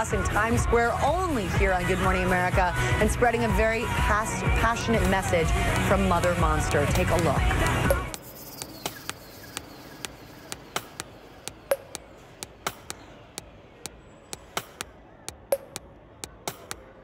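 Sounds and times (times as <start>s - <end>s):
irregular sharp clicks: 7.6s - 16.9s.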